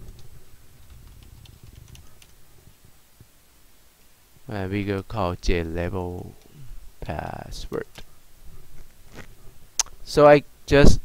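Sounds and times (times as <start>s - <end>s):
keyboard typing: 0.0s - 2.4s
low background rumble: 0.0s - 7.5s.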